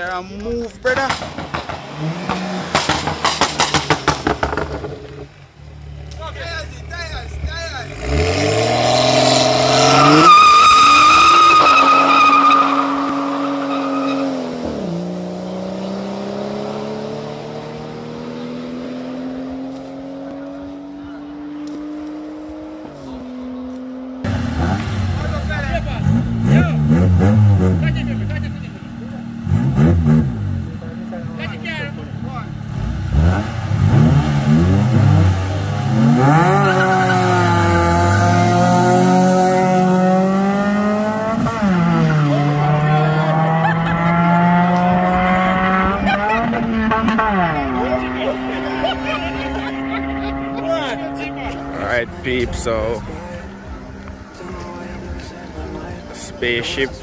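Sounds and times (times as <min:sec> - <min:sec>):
car engines revving in blips: 0:00.8 - 0:06.3, 0:07.2 - 0:56.9
car accelerating hard: 0:00.9 - 0:05.4, 0:06.9 - 0:57.0.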